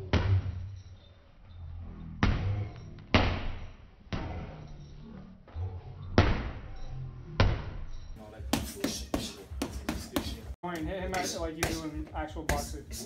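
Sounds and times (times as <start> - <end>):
background music: 5.4 - 13.0.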